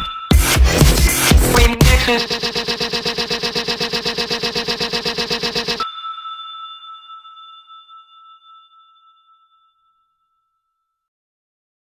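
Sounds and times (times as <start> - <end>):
bell-like ding: 0.0 - 5.2, 5.8 - 11.1
stuttering electronic music: 0.0 - 5.8.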